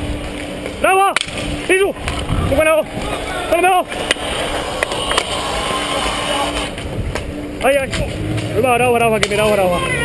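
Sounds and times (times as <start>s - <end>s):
wind rushing over microphone: 1.3s - 5.1s, 6.6s - 8.2s.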